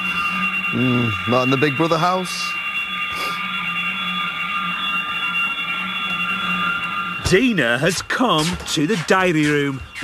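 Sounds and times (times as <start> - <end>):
loud electronic drone: 0.0 - 10.0.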